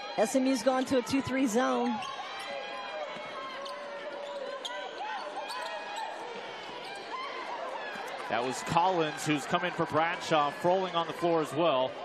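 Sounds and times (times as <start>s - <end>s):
crowd and players voices: 0.0s - 12.0s.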